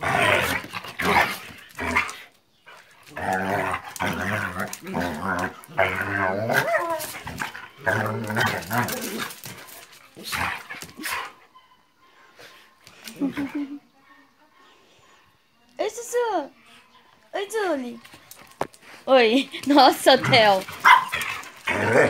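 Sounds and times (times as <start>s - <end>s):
dogs growling: 0.0s - 11.4s, 19.6s - 22.0s
dogs barking: 20.2s - 22.0s.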